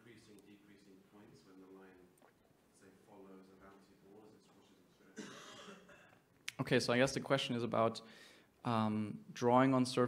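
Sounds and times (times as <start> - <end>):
person coughing: 5.2 - 6.2.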